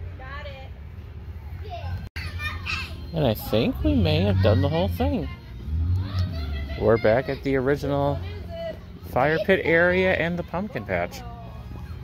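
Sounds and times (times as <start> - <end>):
people chattering: 2.9 - 12.0.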